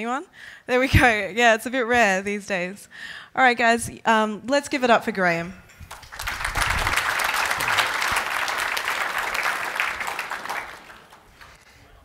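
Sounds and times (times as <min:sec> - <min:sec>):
audience applauding: 0:05.9 - 0:11.6.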